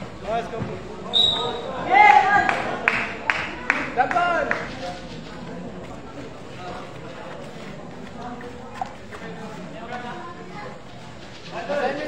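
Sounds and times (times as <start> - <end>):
shrill whistle blast: 1.1 - 1.7
people shouting: 1.3 - 2.8.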